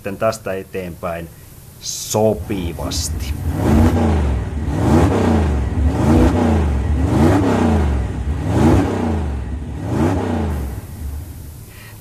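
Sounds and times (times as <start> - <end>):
engine revving: 2.2 - 11.5
low rumble: 2.2 - 11.6.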